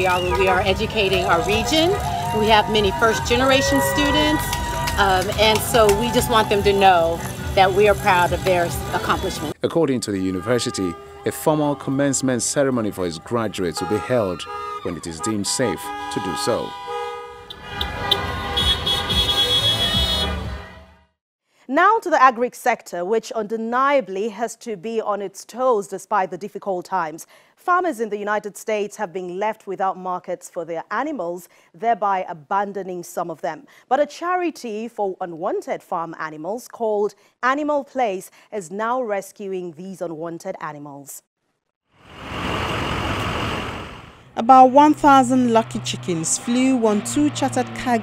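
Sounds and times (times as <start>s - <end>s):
car horns honking: 0.0s - 21.1s
rushing vehicle engine noise: 17.4s - 20.6s, 42.0s - 48.0s
low rumble of slow cars: 42.2s - 48.0s.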